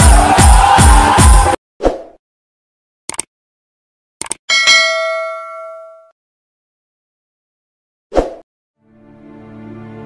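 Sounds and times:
bell ding: 4.5s - 6.1s.

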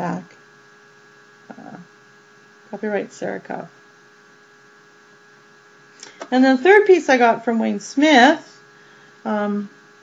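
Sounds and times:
faint electrical hum with hiss: 0.0s - 10.0s.

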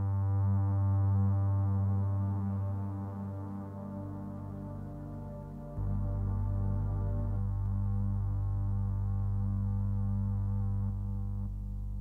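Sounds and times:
low synthesizer drone: 0.0s - 12.0s.

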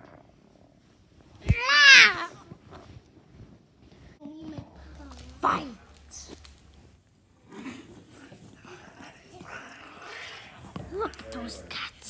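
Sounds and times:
children growling: 1.5s - 2.4s, 4.4s - 6.8s, 7.4s - 12.0s.

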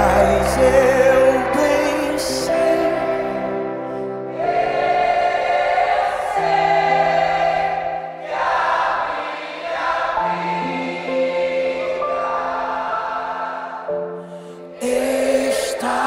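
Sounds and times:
band playing held chords: 0.0s - 8.2s
choir and congregation singing: 0.0s - 16.0s.

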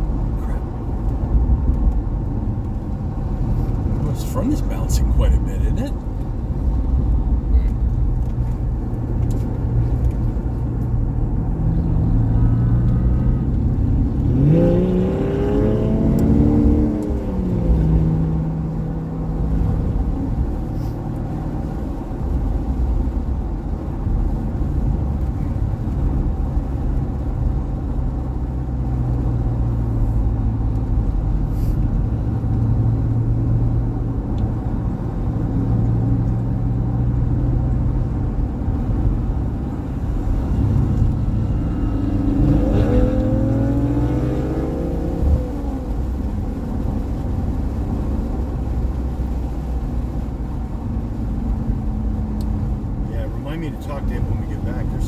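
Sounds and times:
car engine revving: 0.0s - 23.3s, 25.8s - 55.0s
road noise inside cabin: 0.0s - 55.0s.

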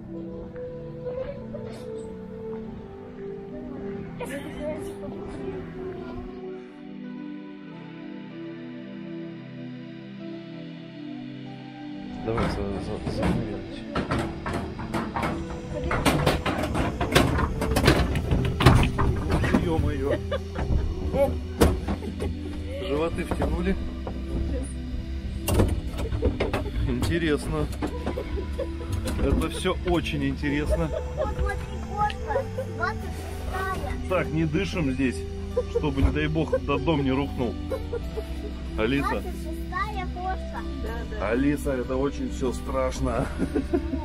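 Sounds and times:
background music: 0.0s - 44.0s
cable car machinery rumble: 12.1s - 44.0s
cable car cabins clanking: 12.3s - 34.9s.

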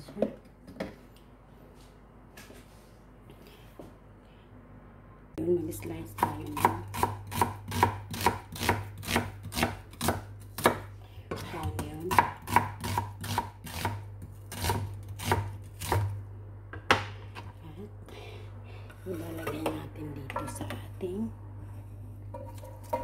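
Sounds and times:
knife chopping on cutting board: 6.2s - 16.1s.

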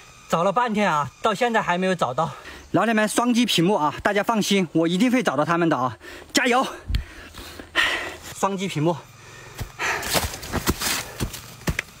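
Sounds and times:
footsteps on dry leaves: 9.5s - 12.0s.

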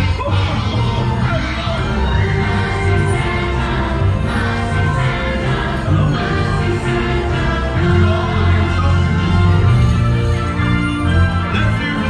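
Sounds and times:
choir singing festive music: 0.0s - 12.0s.

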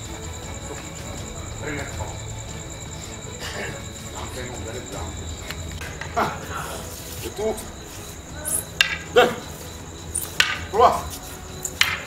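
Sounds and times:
wooden staffs clacking: 5.3s - 12.0s.

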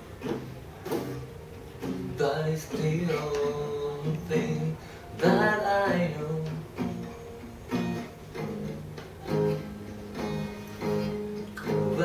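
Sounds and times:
fingerpicked acoustic guitars: 0.0s - 12.0s
person singing: 2.0s - 7.4s, 11.6s - 12.0s.

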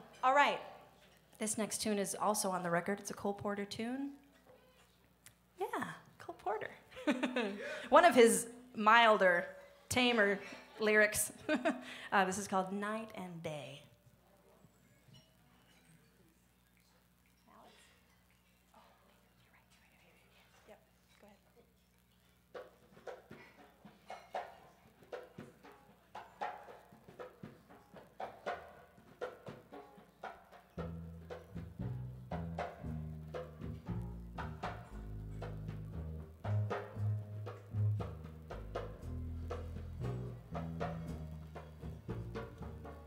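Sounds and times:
drum kit pattern: 25.1s - 43.0s
walking upright bass line: 26.4s - 43.0s.

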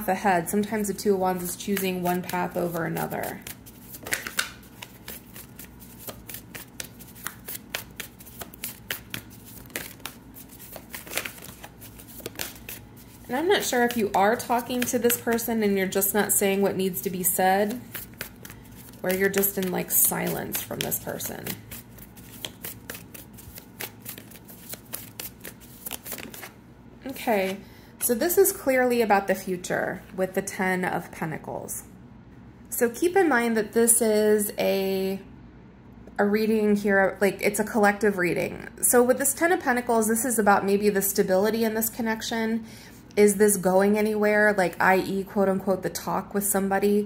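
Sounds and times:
cards being shuffled: 1.4s - 26.6s.

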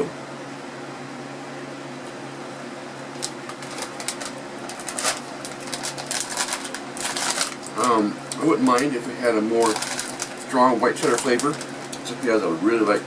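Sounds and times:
low room hum: 0.0s - 13.0s
plastic bag crinkling: 3.1s - 9.0s, 9.6s - 12.4s.

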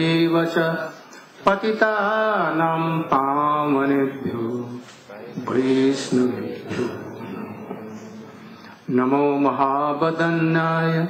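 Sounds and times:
man chanting prayers: 0.0s - 11.0s.

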